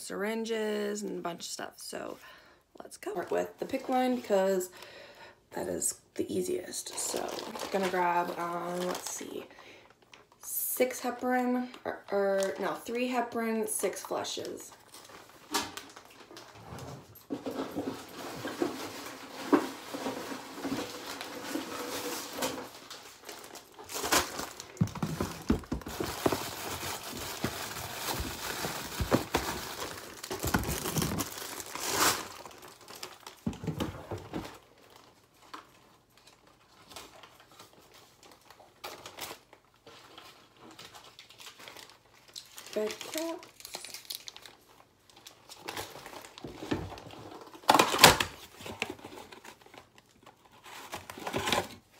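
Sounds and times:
plastic bag crinkling: 0:06.6 - 0:10.5, 0:14.2 - 0:51.9.

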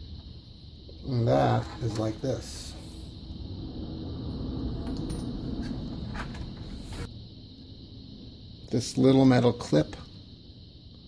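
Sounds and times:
low handling rumble: 0:01.2 - 0:07.1.

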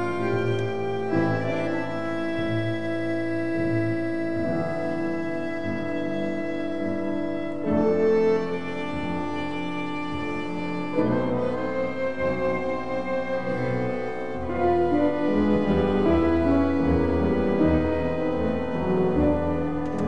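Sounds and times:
tango ensemble playing slow piece: 0:00.0 - 0:20.0.

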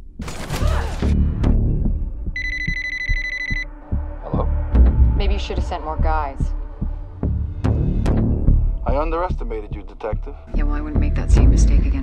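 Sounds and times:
phone ringing: 0:02.4 - 0:03.7.

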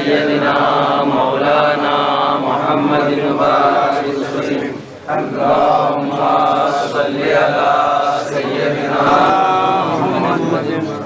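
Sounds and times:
person chanting a slow melody: 0:00.0 - 0:11.0.

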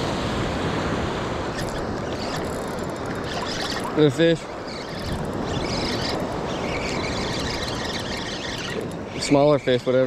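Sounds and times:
wind: 0:00.0 - 0:10.0
spinning reel being cranked: 0:01.6 - 0:09.8.

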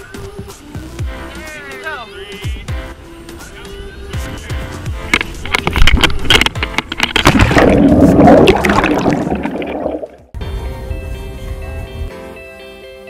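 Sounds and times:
background music: 0:00.0 - 0:13.0
water splashing and gurgling: 0:05.4 - 0:10.3.

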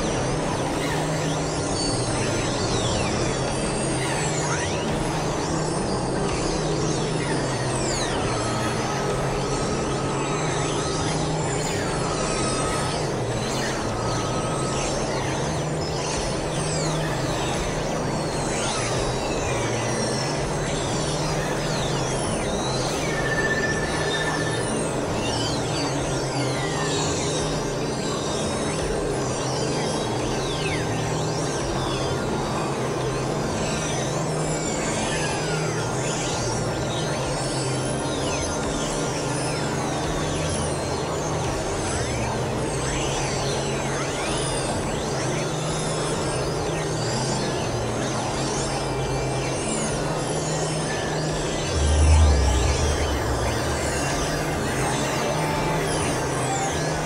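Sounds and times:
low drone: 0:47.4 - 0:57.0
experimental electronic music: 0:50.4 - 0:57.0
high pitch sweeps: 0:50.7 - 0:57.0.

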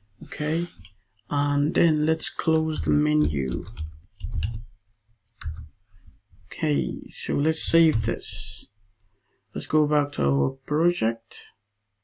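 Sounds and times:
computer keyboard keys clicking: 0:02.4 - 0:04.6, 0:05.4 - 0:05.7, 0:07.6 - 0:08.2.

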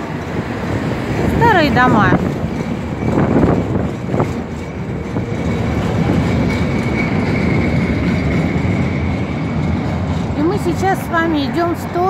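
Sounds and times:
tram wheels rumbling on rails: 0:00.0 - 0:12.0.

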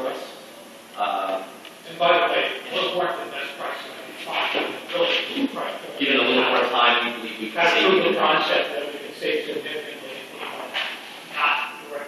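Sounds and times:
man speaking: 0:00.0 - 0:00.4, 0:01.0 - 0:12.0.

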